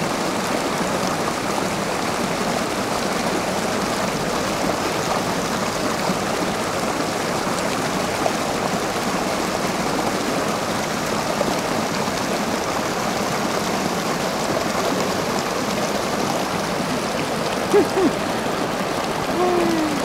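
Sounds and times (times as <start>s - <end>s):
water rushing over rocks: 0.0s - 20.0s.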